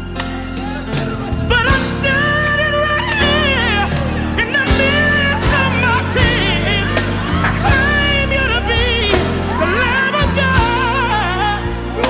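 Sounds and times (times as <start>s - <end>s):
held chords and bass: 0.0s - 12.0s
solo voice singing gospel: 0.0s - 12.0s.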